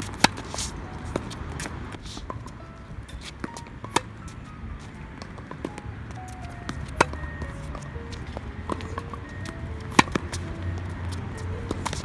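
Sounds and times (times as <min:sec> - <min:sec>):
steady melodic tones: 0:00.0 - 0:12.0.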